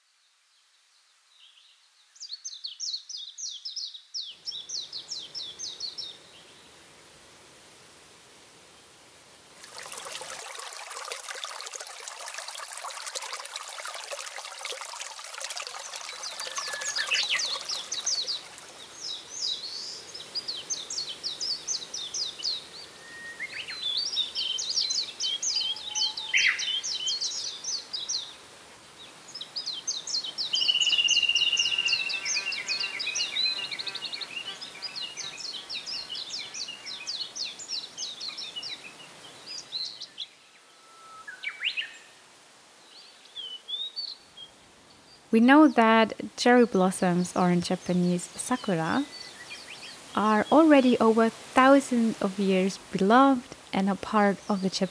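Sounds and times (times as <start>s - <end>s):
songbirds chirping and trilling: 1.0s - 6.8s, 9.6s - 53.1s
trickling water: 9.6s - 19.6s, 45.4s - 54.9s.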